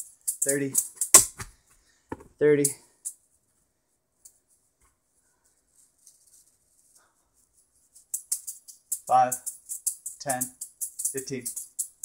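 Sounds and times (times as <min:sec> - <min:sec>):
juggling balls clicking: 0:08.0 - 0:12.0.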